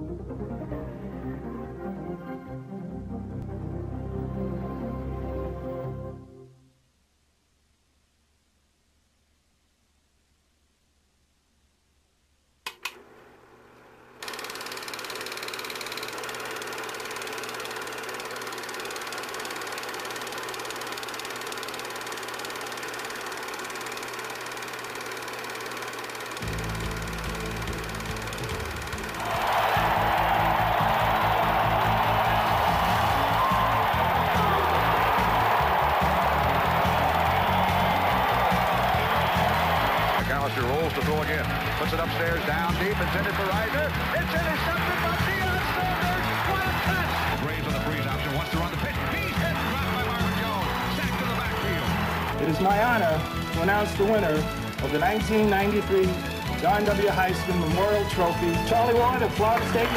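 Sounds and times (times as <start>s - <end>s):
film projector whirring: 12.7s - 59.9s
loud rush of noise: 29.1s - 40.2s.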